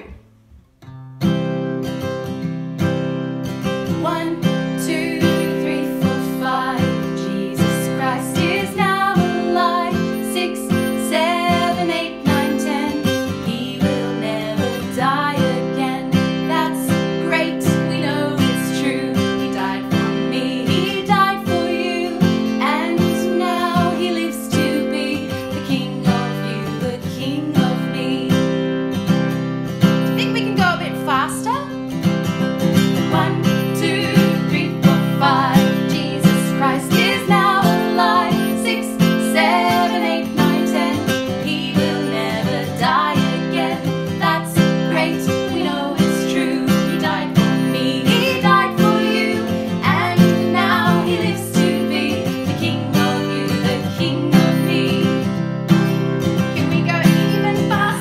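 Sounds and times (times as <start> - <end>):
acoustic guitar strumming: 0.0 - 58.0
women singing: 3.7 - 28.8, 32.9 - 58.0.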